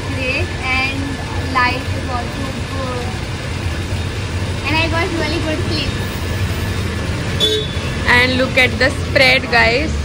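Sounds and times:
background traffic rumble: 0.0s - 10.0s
vehicle horn toot: 7.4s - 8.1s.

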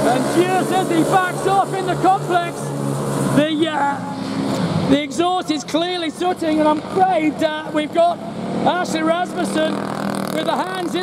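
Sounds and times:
man commentating: 0.0s - 4.2s, 4.8s - 11.0s
kart engines running: 0.0s - 11.0s.

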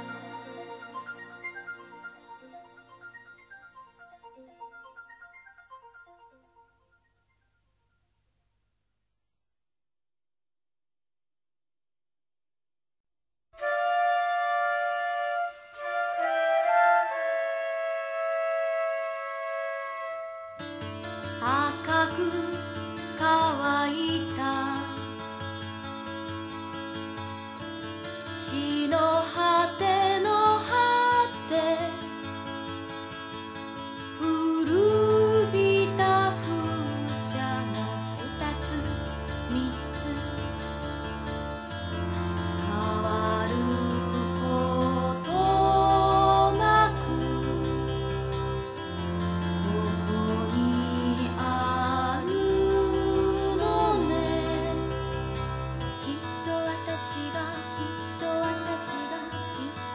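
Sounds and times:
pop song with bass line: 34.2s - 41.0s, 42.5s - 48.4s, 49.6s - 55.2s.

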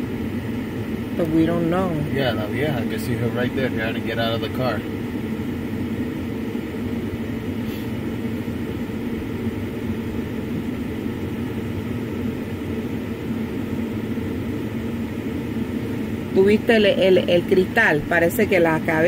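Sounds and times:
vehicle engine idling: 0.8s - 5.1s.

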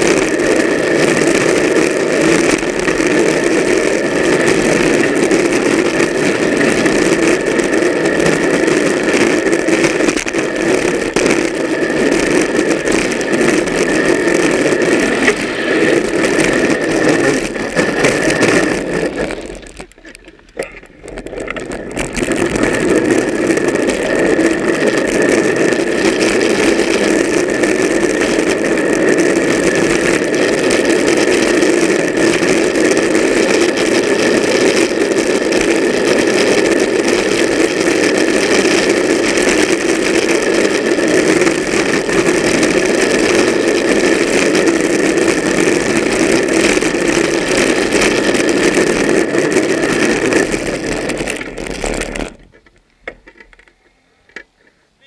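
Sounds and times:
plastic wheels rolling on asphalt: 0.0s - 55.0s.

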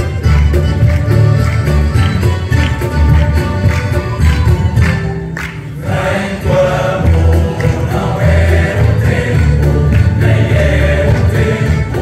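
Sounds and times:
instrumental accompaniment with bass: 0.0s - 12.0s
choir singing: 5.8s - 12.0s.

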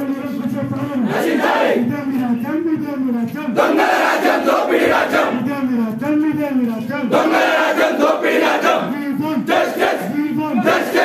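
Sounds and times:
crowd of men chanting: 1.0s - 1.9s, 3.6s - 5.4s, 7.1s - 11.0s.

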